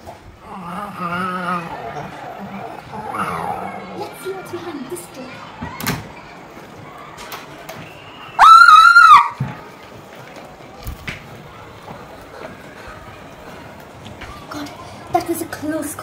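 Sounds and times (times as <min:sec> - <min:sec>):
girl screaming: 0:08.4 - 0:09.4.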